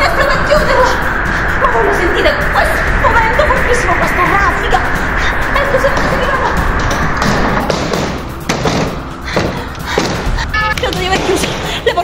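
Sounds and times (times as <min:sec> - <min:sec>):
loud rushing noise: 0:00.0 - 0:11.8
background music: 0:00.0 - 0:12.0
sharp knock: 0:06.8 - 0:10.3.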